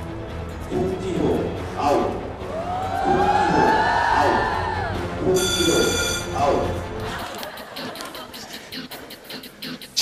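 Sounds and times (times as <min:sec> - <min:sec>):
background music: 0:00.0 - 0:10.0
bright ringing chime: 0:05.4 - 0:06.4.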